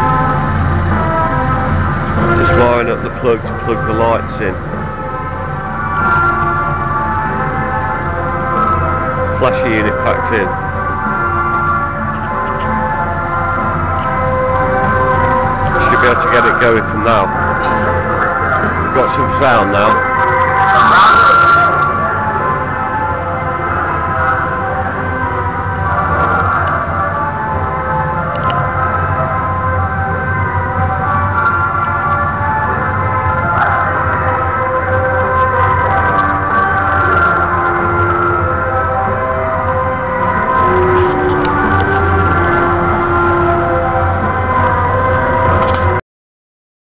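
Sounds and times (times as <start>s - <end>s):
music over loudspeakers: 0.0s - 46.0s
steady low hum: 0.0s - 46.0s.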